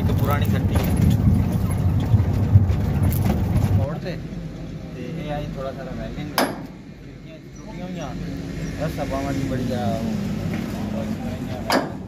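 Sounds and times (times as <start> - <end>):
truck rumbling over gravel: 0.0 - 4.2.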